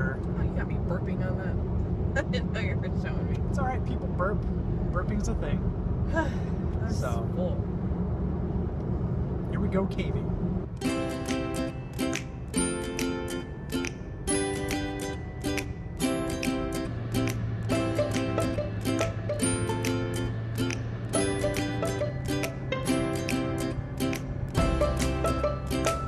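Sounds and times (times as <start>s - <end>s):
plucked-string chords: 10.8s - 26.0s.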